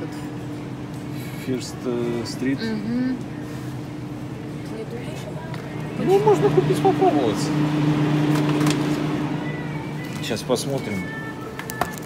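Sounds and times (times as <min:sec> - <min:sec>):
steady low hum: 0:00.0 - 0:11.6.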